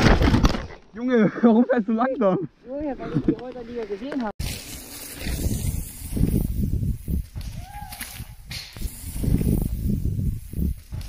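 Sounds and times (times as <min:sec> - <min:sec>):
bikes rolling on dirt: 0:03.5 - 0:11.0
wind on microphone: 0:05.2 - 0:11.0.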